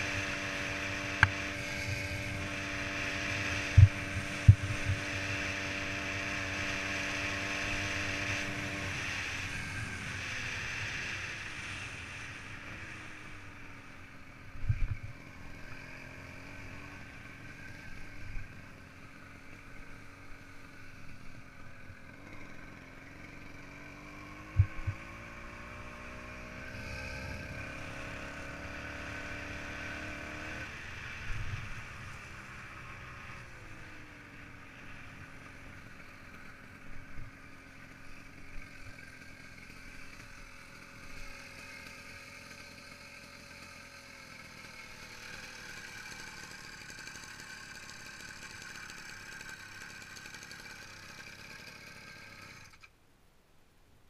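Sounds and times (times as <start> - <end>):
small two-stroke engine running: 0.0 - 52.9.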